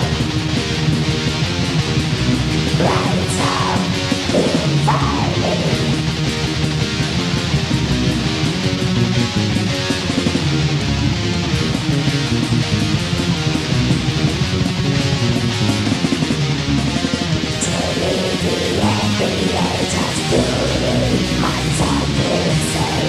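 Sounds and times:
black metal music: 0.0 - 23.0.

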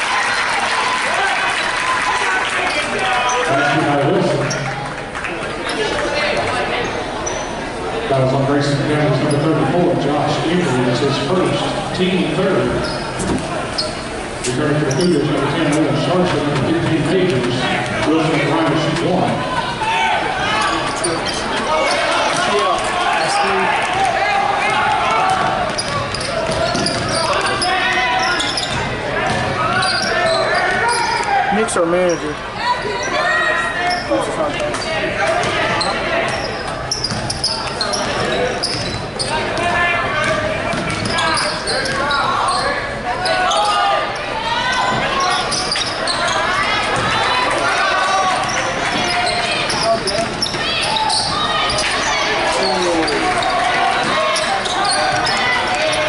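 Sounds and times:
spectators chattering: 0.0 - 56.0
basketball bouncing on wooden floor: 25.3 - 27.2.

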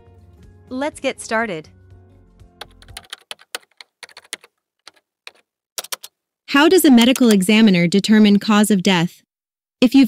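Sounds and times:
background music: 0.0 - 3.6
keyboard typing: 2.6 - 6.2, 6.9 - 7.7.

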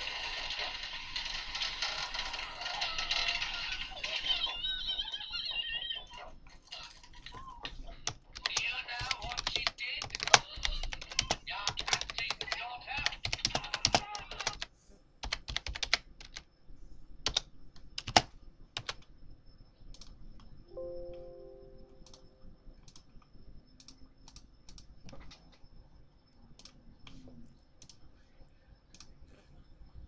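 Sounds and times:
keyboard typing: 6.9 - 16.5, 17.2 - 19.1, 19.9 - 20.5, 21.1 - 23.2, 23.8 - 25.6
alert chime: 20.7 - 22.3.

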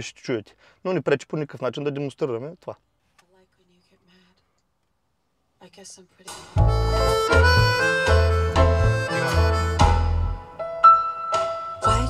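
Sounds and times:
music with deep bass: 6.6 - 10.5.

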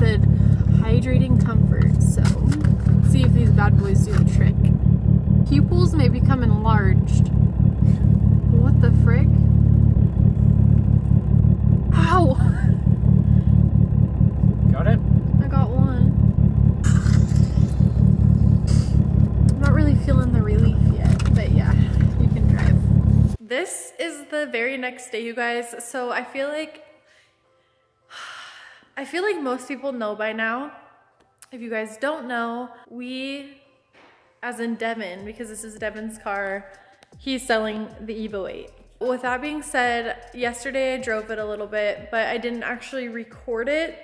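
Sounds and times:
car engine idling: 0.0 - 23.4.

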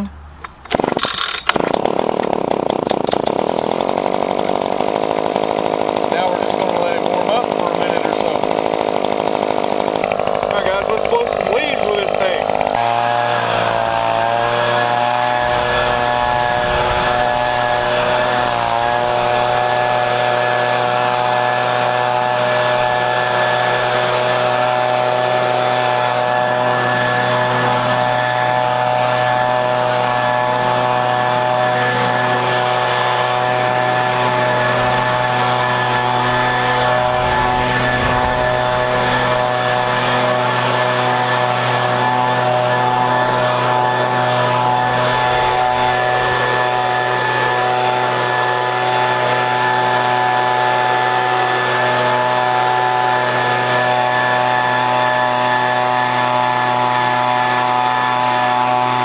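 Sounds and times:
leaf blower engine droning: 0.0 - 59.0.

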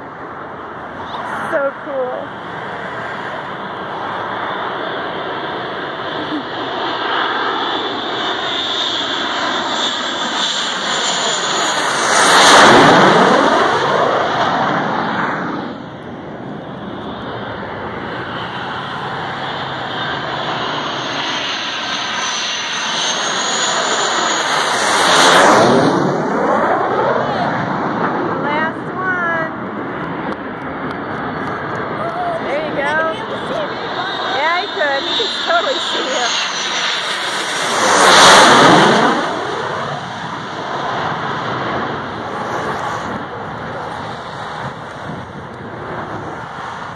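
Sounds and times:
jet engine passing overhead: 0.0 - 46.9.

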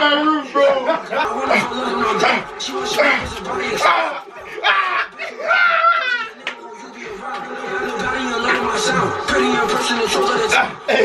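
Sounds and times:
young men shouting excitedly: 0.5 - 6.4.

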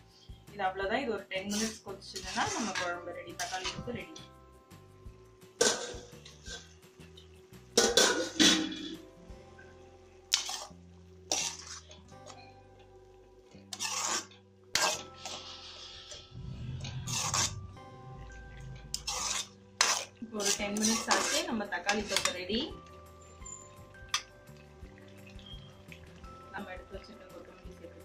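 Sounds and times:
quiet background music: 0.0 - 28.0.

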